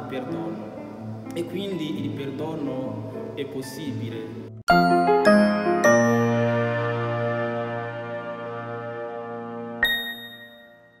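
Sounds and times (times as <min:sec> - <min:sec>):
soft sustained music: 0:00.0 - 0:11.0
bright chime ding: 0:09.8 - 0:11.0.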